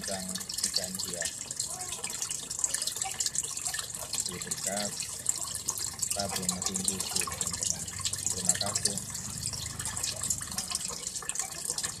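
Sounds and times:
water splashing from filter hose: 0:00.0 - 0:12.0.

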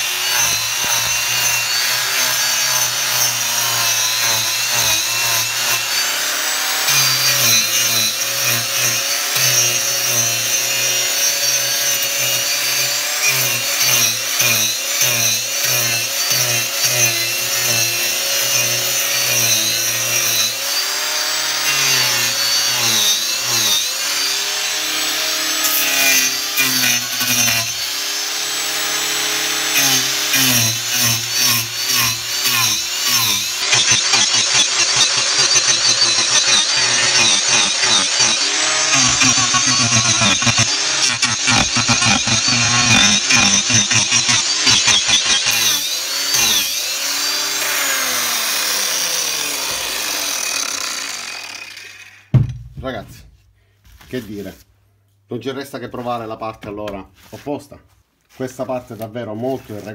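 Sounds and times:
angle grinder carving wood: 0:00.0 - 0:52.4, 0:58.3 - 0:59.9.

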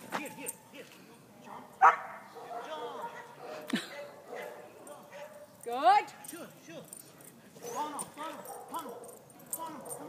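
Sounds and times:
dog barking: 0:01.5 - 0:05.5, 0:07.6 - 0:09.2.

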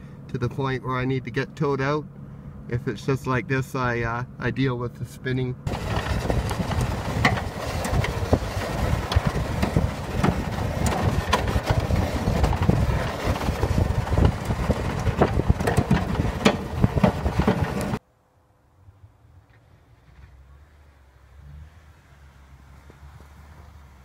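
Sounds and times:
car engine under load: 0:05.6 - 0:18.0
sharp knocks and clatters: 0:05.7 - 0:18.0.

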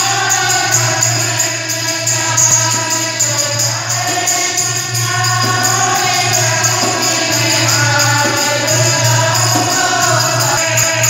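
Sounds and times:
group singing devotional chorus: 0:00.0 - 0:11.0
jingling metal percussion: 0:00.0 - 0:11.0.

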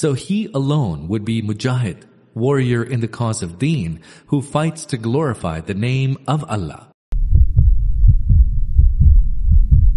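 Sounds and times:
deep low thumping pulses: 0:07.1 - 0:09.9
low rumble: 0:07.1 - 0:09.9.

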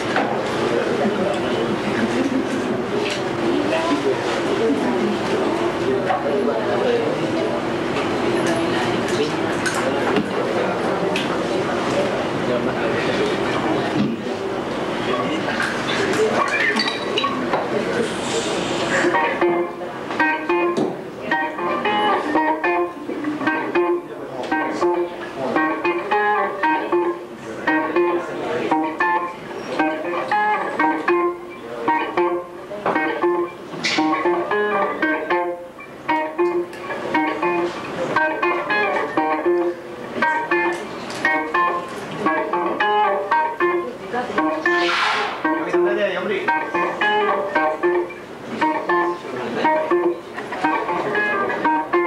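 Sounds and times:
electric guitar riff: 0:17.7 - 0:52.0.

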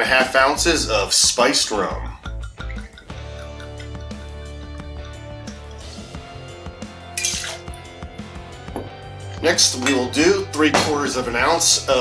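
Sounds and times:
background music: 0:00.0 - 0:12.0
liquid trickling into metal cup: 0:02.0 - 0:06.2, 0:07.2 - 0:07.9.

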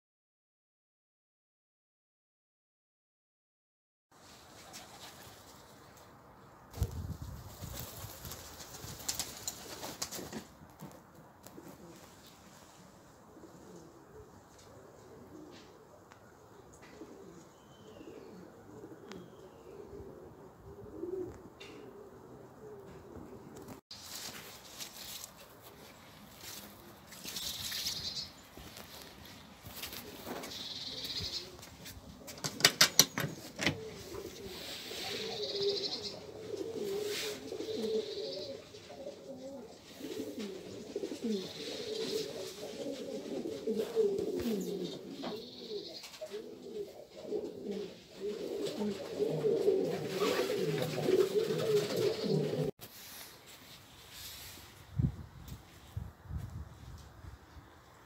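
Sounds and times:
pigeon wings clapping: 0:07.5 - 0:10.5
pigeons cooing: 0:11.4 - 0:23.8, 0:29.7 - 0:52.8
faint high bird chirps: 0:30.5 - 0:31.6, 0:35.2 - 0:36.2, 0:37.7 - 0:38.6, 0:44.7 - 0:46.2.

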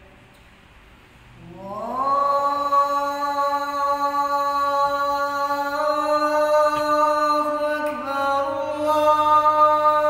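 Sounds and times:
man chanting call to prayer: 0:01.4 - 0:10.0.

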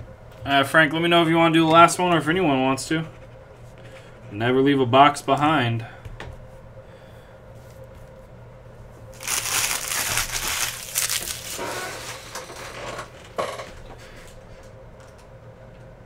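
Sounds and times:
foil wrappers crinkling: 0:09.1 - 0:12.8.

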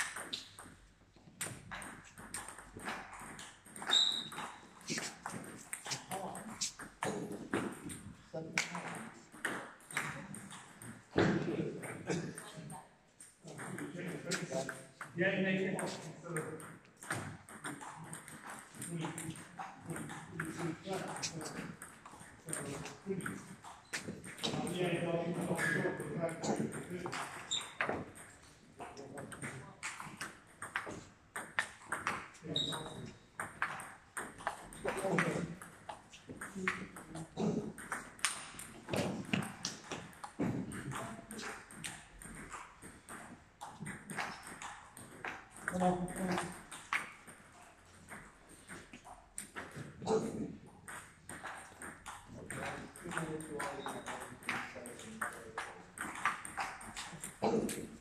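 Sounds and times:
table tennis ball clicking: 0:00.0 - 0:00.8, 0:37.8 - 0:49.8, 0:55.2 - 0:58.0.

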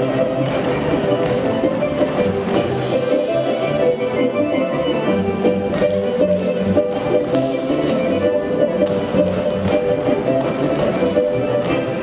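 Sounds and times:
folk dance music with fiddle: 0:00.0 - 0:12.0.

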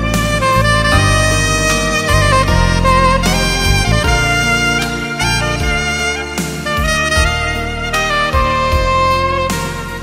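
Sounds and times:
sustained low accompaniment: 0:00.0 - 0:09.5
soprano saxophone melody: 0:00.0 - 0:10.0.

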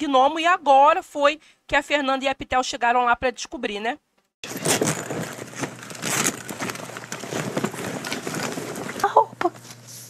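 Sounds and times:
cloth and bag rustling: 0:04.5 - 0:10.0.

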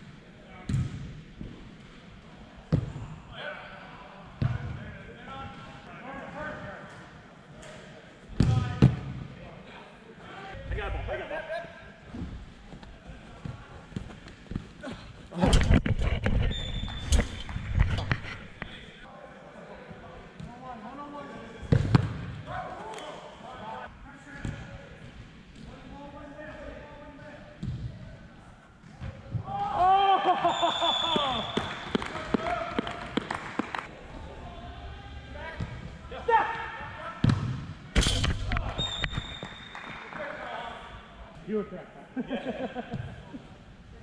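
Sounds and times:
padded gloves clapping: 0:31.2 - 0:33.9
referee's whistle blast: 0:38.8 - 0:39.8.

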